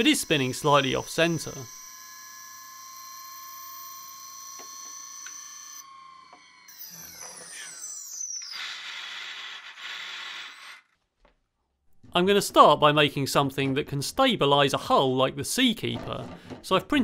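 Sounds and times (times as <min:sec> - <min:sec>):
motor spinning high whine: 0:00.0 - 0:09.2.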